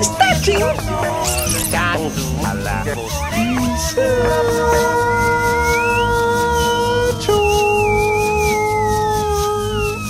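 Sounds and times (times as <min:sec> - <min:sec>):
gliding high whistle-like tone: 0:03.3 - 0:10.0.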